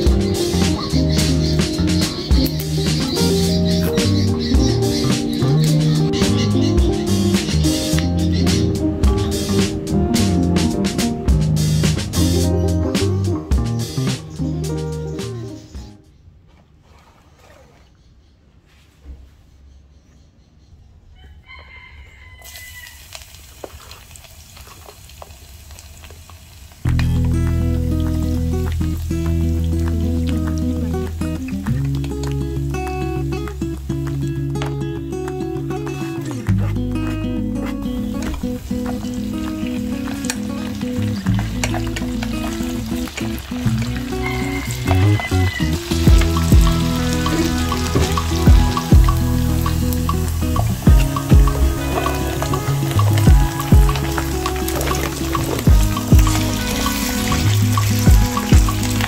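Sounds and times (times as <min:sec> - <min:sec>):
background music with guitar: 0:00.0 - 0:16.0, 0:26.8 - 0:59.0
deep drum thumps: 0:06.2 - 0:12.3, 0:46.0 - 0:46.9, 0:47.9 - 0:49.2, 0:50.6 - 0:52.2, 0:53.1 - 0:54.2, 0:55.5 - 0:56.5, 0:58.1 - 0:58.8
rooster crowing: 0:21.1 - 0:23.2, 0:44.1 - 0:45.7
garlic sizzling in oil: 0:22.4 - 0:34.2, 0:37.9 - 0:59.0.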